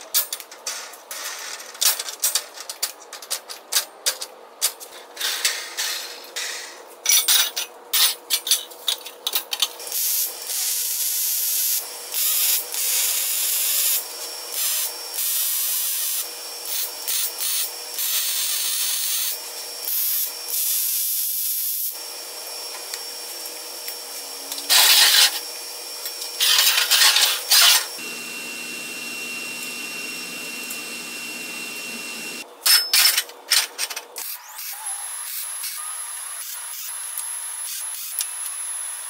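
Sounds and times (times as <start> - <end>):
arc welding hissing: 9.8 - 32.4, 34.2 - 39.0.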